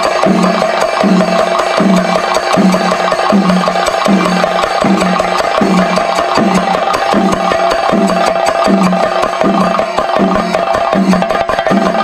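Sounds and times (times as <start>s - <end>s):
low drum tone: 0.0s - 12.0s
rapid percussion strokes: 0.0s - 12.0s.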